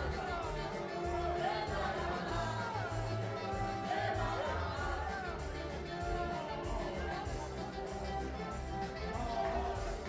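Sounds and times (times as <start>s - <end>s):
backing track with heavy bass: 0.0s - 10.0s
group singing into microphones: 0.0s - 10.0s.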